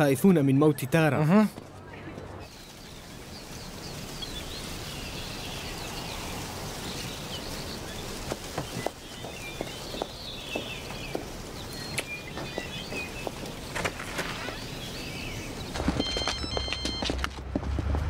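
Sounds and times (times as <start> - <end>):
outdoor background hiss: 0.0 - 16.7
birds chirping: 0.0 - 17.2.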